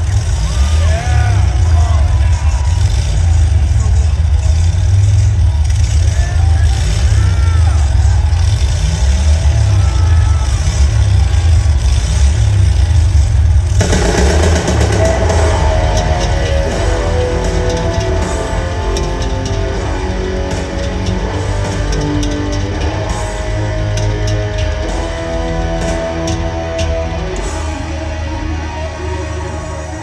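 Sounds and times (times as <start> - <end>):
motorcycle engine running: 0.0 - 28.1
band with electric guitar: 0.0 - 30.0
crowd cheering and shouting: 0.0 - 30.0.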